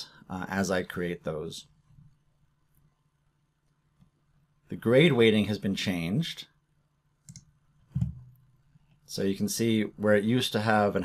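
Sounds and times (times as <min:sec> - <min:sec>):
low dull thump: 0:08.0 - 0:08.3.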